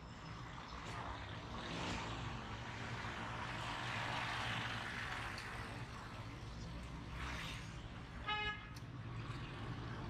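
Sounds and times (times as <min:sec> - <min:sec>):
street noise: 0:00.0 - 0:10.0.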